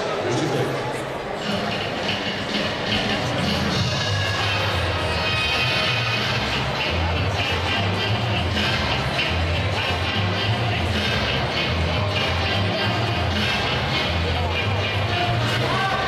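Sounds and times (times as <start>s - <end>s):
ballroom dance music over loudspeakers: 0.0s - 16.0s.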